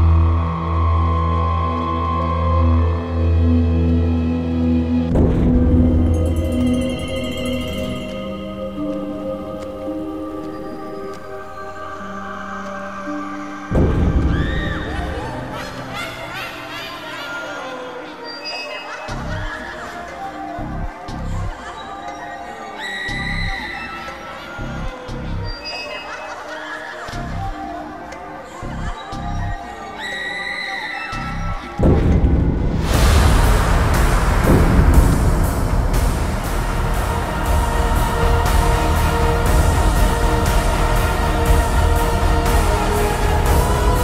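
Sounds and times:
low bass pulses: 0:00.0 - 0:06.8, 0:13.7 - 0:15.9, 0:31.8 - 0:44.0
dramatic film score: 0:00.0 - 0:25.0, 0:30.0 - 0:44.0
loud low boom: 0:05.1 - 0:06.8, 0:13.7 - 0:16.0, 0:31.8 - 0:41.1
held high tone: 0:05.1 - 0:17.2.

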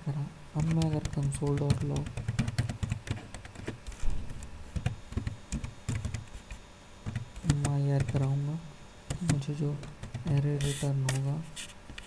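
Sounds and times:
keyboard typing: 0:00.6 - 0:03.8, 0:04.4 - 0:08.4, 0:09.1 - 0:10.8.

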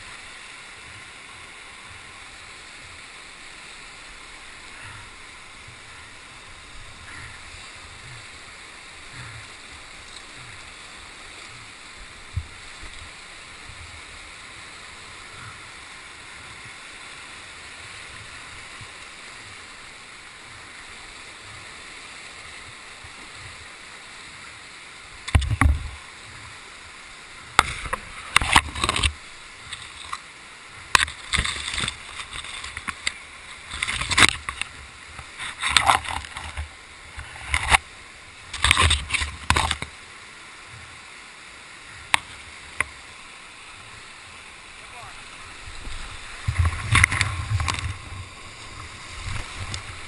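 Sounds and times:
water splashing: 0:00.0 - 0:50.0
whitewater rapids rushing: 0:00.0 - 0:50.0.

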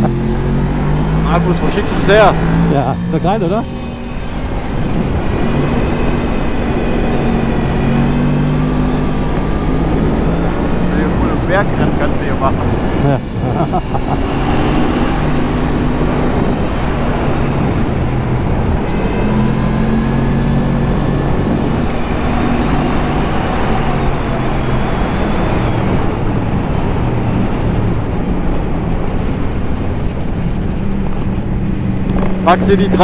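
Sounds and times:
motorcycle engine revving: 0:00.0 - 0:33.0
wind noise on microphone: 0:03.7 - 0:32.5.

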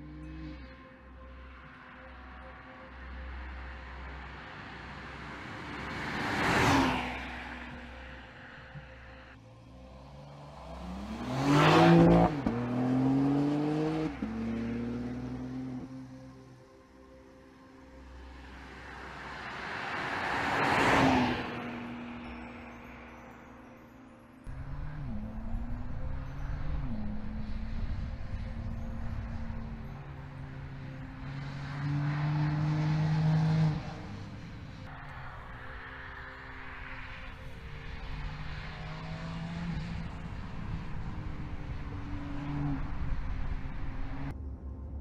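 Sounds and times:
car driving past: 0:04.5 - 0:16.2, 0:18.4 - 0:23.0, 0:24.5 - 0:44.3.

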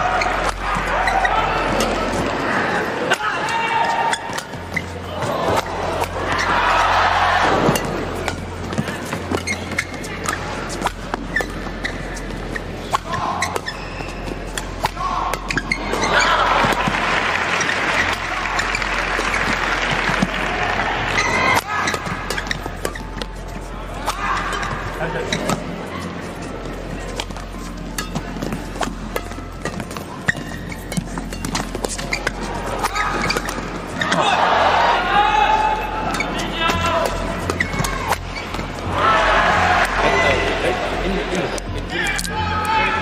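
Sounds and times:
crowd shouting: 0:00.0 - 0:08.1, 0:14.8 - 0:22.4, 0:32.3 - 0:43.0
crowd noise: 0:00.0 - 0:43.0
rackets hitting shuttlecock: 0:02.9 - 0:34.3, 0:36.0 - 0:38.9.

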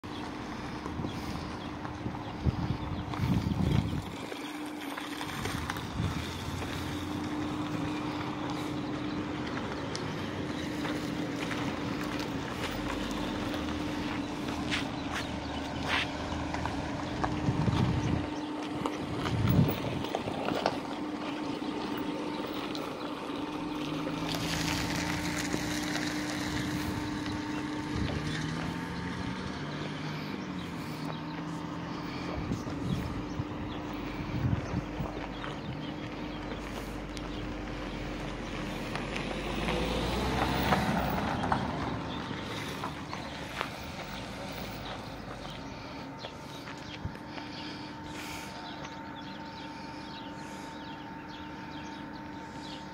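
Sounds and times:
low engine rumbles: 0:00.0 - 0:52.9
vehicle engine idling: 0:00.0 - 0:52.9
wind: 0:00.0 - 0:52.9.

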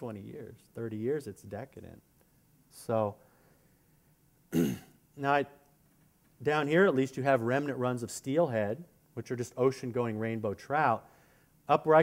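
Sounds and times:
man clearing his throat: 0:04.5 - 0:05.0.

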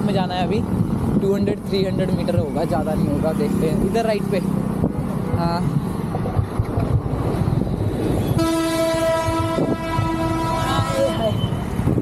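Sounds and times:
vehicle horn: 0:08.2 - 0:11.6.

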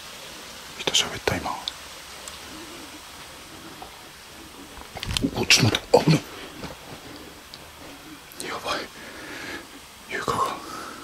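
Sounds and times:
person whispering: 0:00.8 - 0:01.7, 0:05.0 - 0:06.5, 0:08.3 - 0:09.0, 0:10.1 - 0:11.0.

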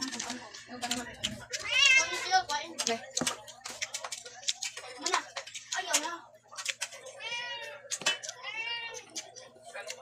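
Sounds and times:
cat meowing: 0:01.6 - 0:02.2
person chewing: 0:03.4 - 0:05.8.

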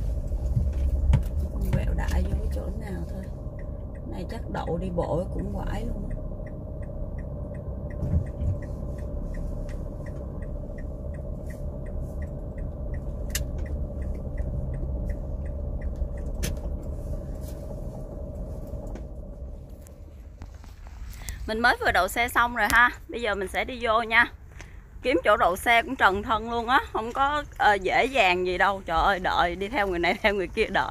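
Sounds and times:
car engine and road rumble: 0:00.0 - 0:30.9
turn signal ticking: 0:00.0 - 0:30.9.

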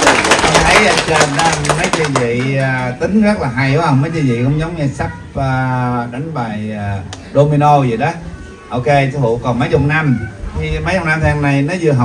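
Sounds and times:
small group clapping: 0:00.0 - 0:03.0
man speaking into a microphone: 0:00.4 - 0:12.0.

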